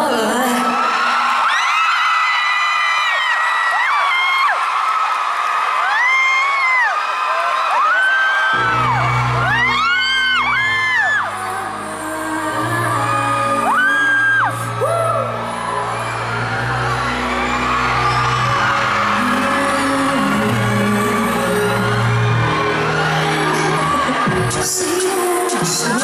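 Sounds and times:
live pop music: 0.0s - 1.5s, 7.5s - 26.0s
crowd screaming and whooping: 0.0s - 26.0s.

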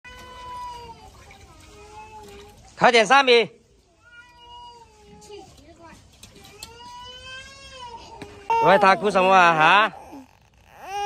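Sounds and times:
young child crying: 6.8s - 11.0s.

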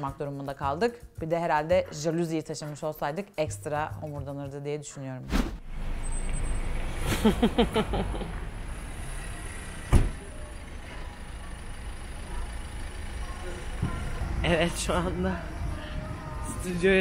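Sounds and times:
sharp thump: 5.3s - 5.6s, 9.9s - 10.2s
low traffic rumble: 5.6s - 17.0s.

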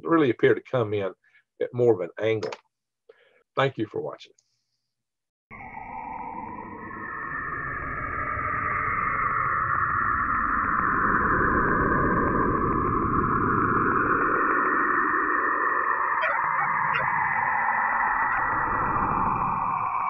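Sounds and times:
synthesized electronic drone: 5.5s - 20.0s.

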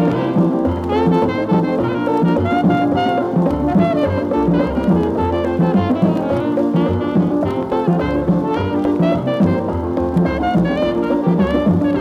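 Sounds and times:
drums: 0.0s - 12.0s
horns playing calypso tune: 0.0s - 12.0s.

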